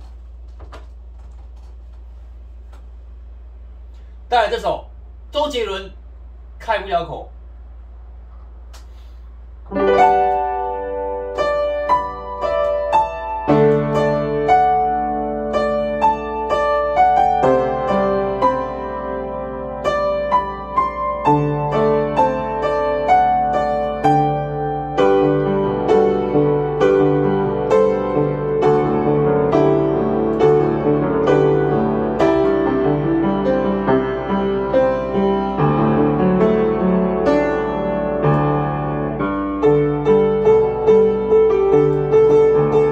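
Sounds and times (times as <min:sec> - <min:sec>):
upright piano melody: 0:09.7 - 0:42.9.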